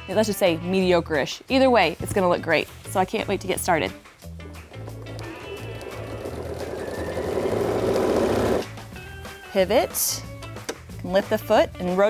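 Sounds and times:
sewing machine stitching: 5.8s - 8.7s.

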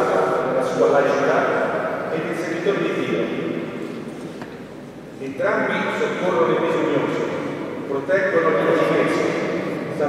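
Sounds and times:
man reading aloud: 0.0s - 3.4s, 5.2s - 10.0s.

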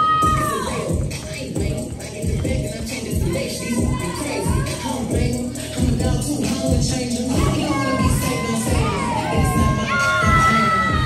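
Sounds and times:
children shouting and cheering: 0.0s - 1.0s, 3.2s - 5.2s, 7.3s - 11.0s
hip-hop track: 0.0s - 11.0s.

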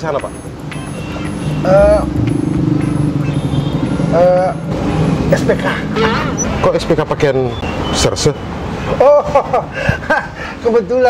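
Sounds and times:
vehicle engine droning: 0.0s - 7.8s.

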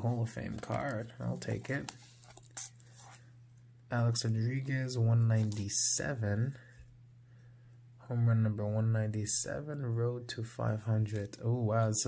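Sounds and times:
cards rustling in hands: 0.0s - 3.3s, 4.2s - 5.8s
steady low hum: 0.0s - 12.0s.

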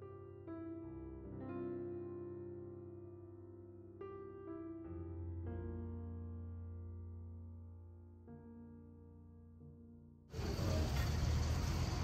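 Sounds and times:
soft piano music: 0.0s - 12.0s
road traffic rumble: 10.4s - 12.0s.

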